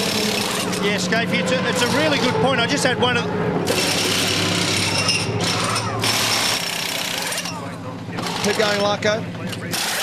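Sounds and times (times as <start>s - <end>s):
pneumatic wheel gun rattling: 9.7s - 10.0s.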